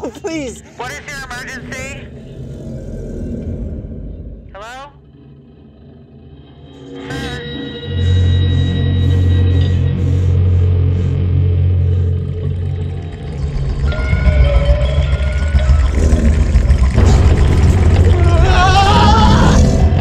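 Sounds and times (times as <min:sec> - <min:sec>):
deep droning rumble: 0:00.3 - 0:20.0
pulsing low beat: 0:07.1 - 0:20.0.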